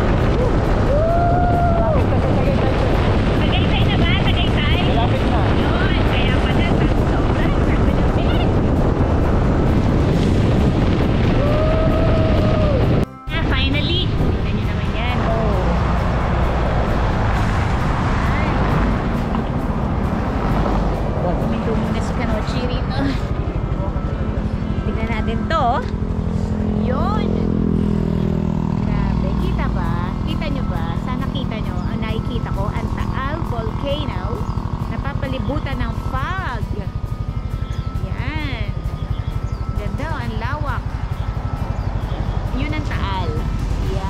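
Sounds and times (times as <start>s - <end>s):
motorcycle road noise: 0.0s - 44.0s
wind rush on microphone: 0.0s - 44.0s.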